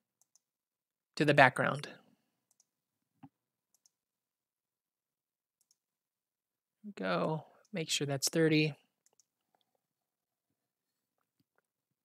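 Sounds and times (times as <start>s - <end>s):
faint computer mouse clicks: 2.5s - 4.0s, 5.6s - 5.8s, 9.0s - 9.7s.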